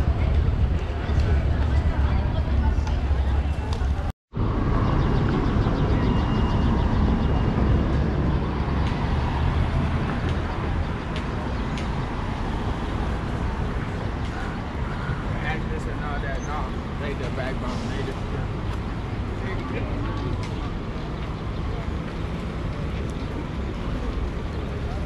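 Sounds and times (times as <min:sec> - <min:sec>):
faint voices of passersby: 0:00.0 - 0:04.1, 0:04.8 - 0:25.0
passing car traffic: 0:00.0 - 0:25.0.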